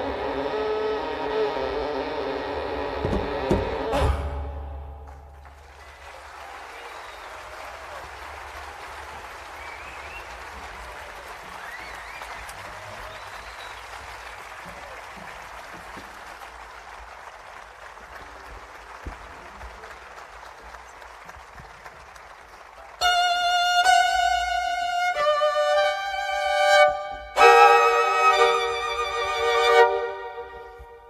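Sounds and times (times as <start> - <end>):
audience applauding: 5.0 - 25.2.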